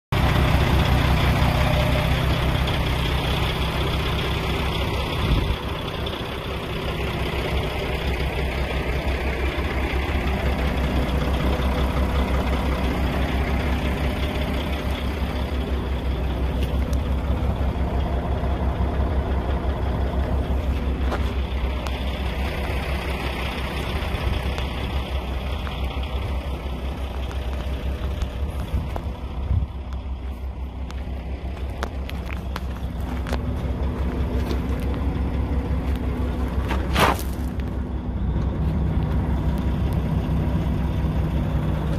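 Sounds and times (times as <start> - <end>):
diesel engine idling: 0.1 - 41.9.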